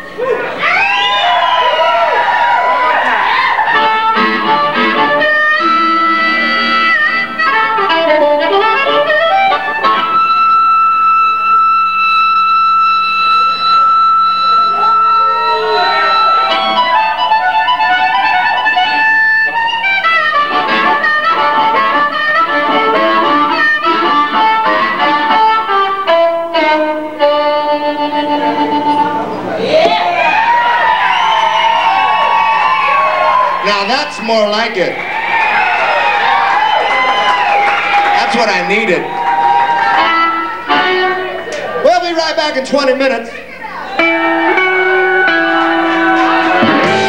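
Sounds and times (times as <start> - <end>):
blues harmonica solo: 0.0 - 29.5, 30.4 - 47.0.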